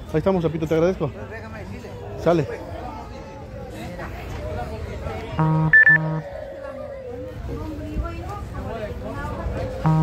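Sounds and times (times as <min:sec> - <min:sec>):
low traffic rumble: 0:00.0 - 0:10.0
faint background voices: 0:01.0 - 0:10.0.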